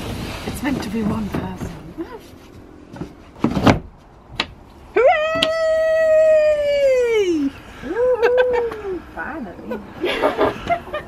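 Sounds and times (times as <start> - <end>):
howl-like vocal call: 5.0 - 9.0.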